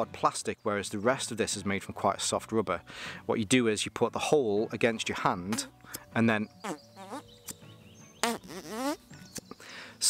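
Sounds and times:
fart machine noises: 6.6 - 7.2, 8.2 - 9.1.

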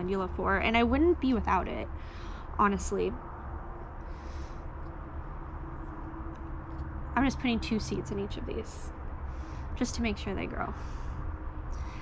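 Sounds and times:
faint steady hum: 0.0 - 12.0
low background rumble: 0.0 - 12.0.

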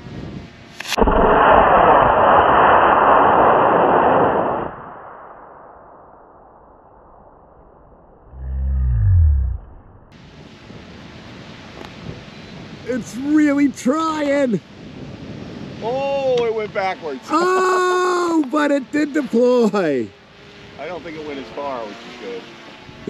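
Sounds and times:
low rumble falling in pitch: 8.1 - 10.2.

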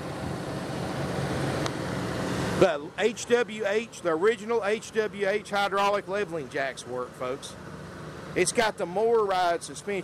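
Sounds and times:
generator humming: 0.0 - 10.0.

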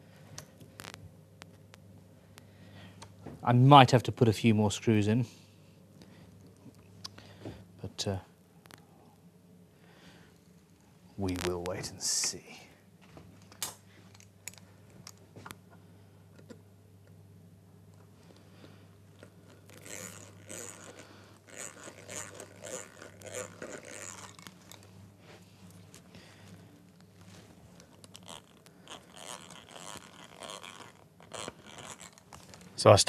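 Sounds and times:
low steady hum: 0.0 - 33.0
screws crunching and scraping: 19.2 - 24.9, 27.2 - 32.7.

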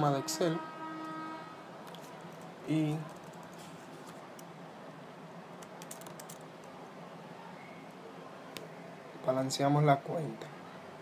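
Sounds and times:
faint room hiss: 0.0 - 11.0
keyboard keys clicking: 5.6 - 6.7.

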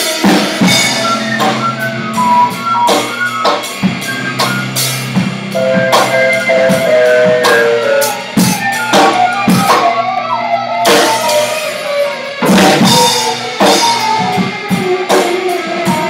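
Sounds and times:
irregular drum hits: 0.0 - 10.2, 10.9 - 16.0
synthesizer held notes: 0.6 - 16.0.

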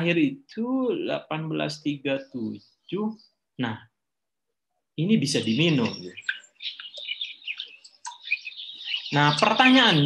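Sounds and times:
small birds chirping: 0.0 - 4.2, 4.9 - 10.0.

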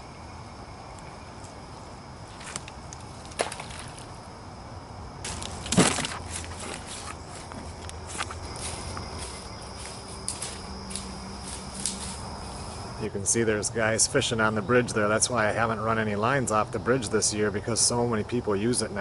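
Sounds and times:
footsteps crunching dry leaves: 5.2 - 13.0.

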